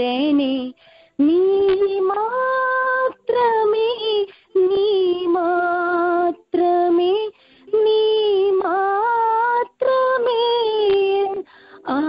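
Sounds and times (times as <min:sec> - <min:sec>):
woman singing over telephone: 0:00.0 - 0:12.0.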